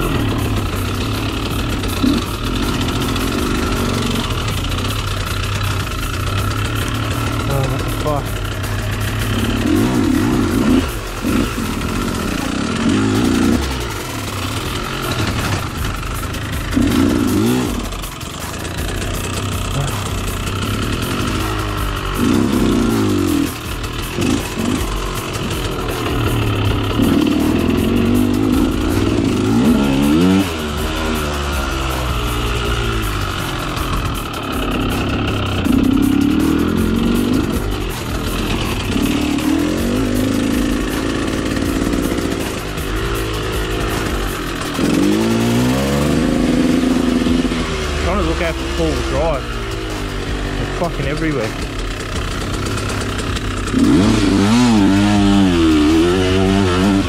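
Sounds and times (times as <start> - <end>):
background music: 0.0 - 57.0
motorcycle engine revving: 0.0 - 57.0.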